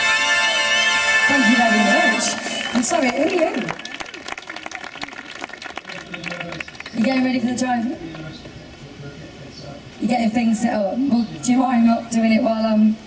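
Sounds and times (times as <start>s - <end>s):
light applause: 1.8s - 8.5s.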